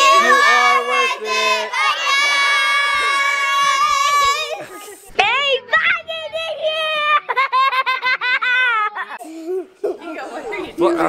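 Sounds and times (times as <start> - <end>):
children shouting: 0.0 - 5.0
children calling: 0.0 - 8.0.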